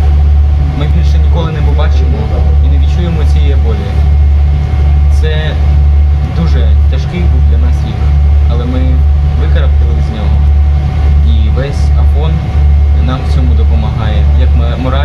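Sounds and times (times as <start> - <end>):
ship engine low drone: 0.0 - 15.0
young man speaking: 0.7 - 4.1, 5.1 - 5.6, 6.2 - 10.4, 11.1 - 15.0.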